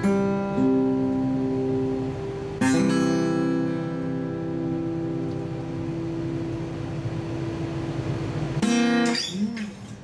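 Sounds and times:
acoustic guitar chords strummed: 0.0s - 10.0s.

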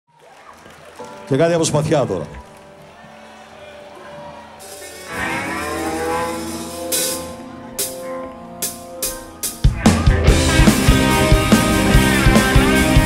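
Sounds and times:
rock band playing: 2.4s - 13.0s.

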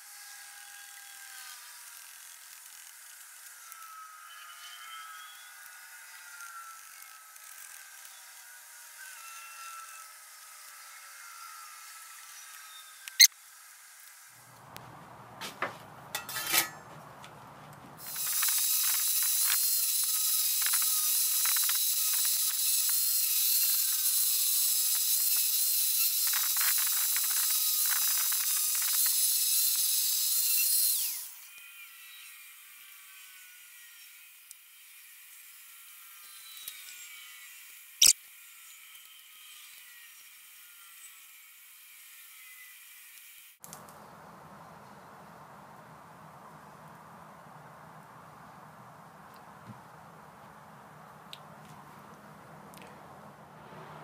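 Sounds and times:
angle grinder grinding steel: 0.0s - 14.4s, 16.1s - 17.0s, 18.0s - 43.6s
low background noise: 43.6s - 54.0s.

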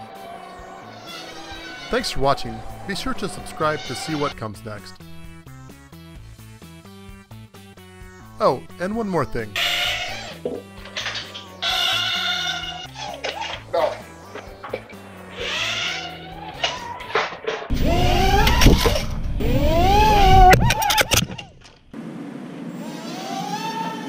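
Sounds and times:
quadcopter motors whining: 0.0s - 5.6s, 14.0s - 21.5s, 22.8s - 24.0s
background music: 0.0s - 17.7s
propeller wash rushing: 1.2s - 11.6s.

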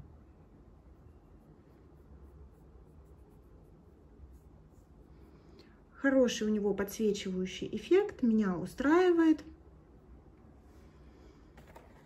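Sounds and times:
faint room hum: 0.0s - 12.0s
fingers rubbing cream on skin: 1.3s - 5.1s.

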